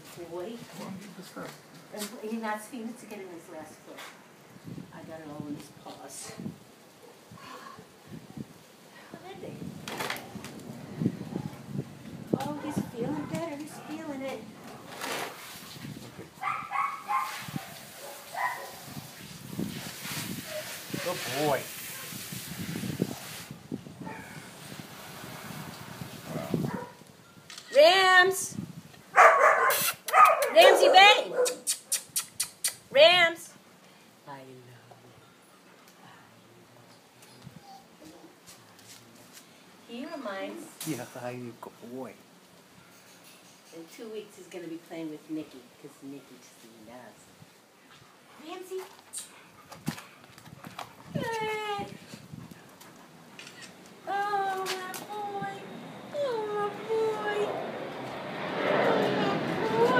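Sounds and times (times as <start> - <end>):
low steady background hiss: 32.8 - 49.7
dog whining: 55.6 - 57.5, 59.5 - 59.9.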